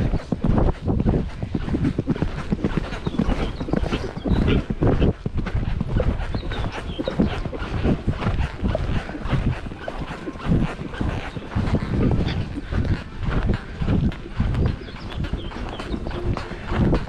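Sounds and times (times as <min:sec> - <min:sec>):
hoofbeats on sand: 0:00.0 - 0:17.0
horse breathing: 0:00.0 - 0:17.0.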